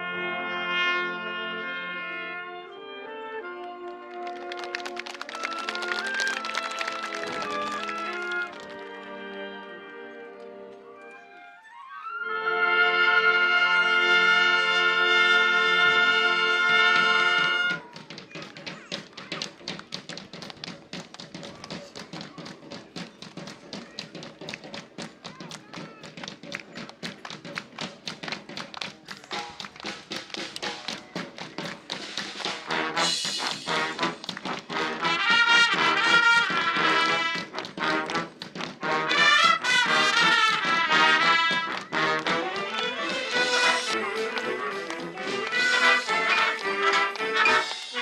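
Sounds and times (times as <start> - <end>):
marching band brass chord: 12.5 - 17.8, 32.1 - 48.0
rhythmic percussion groove: 17.0 - 48.0.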